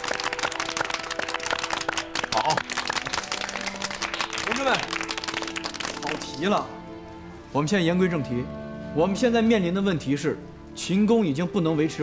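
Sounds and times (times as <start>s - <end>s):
group clapping: 0.0s - 6.7s
background music: 0.0s - 12.0s.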